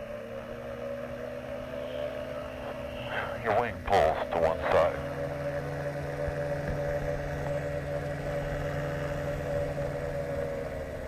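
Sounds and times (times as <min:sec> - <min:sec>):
engine idling hum: 0:00.0 - 0:11.0.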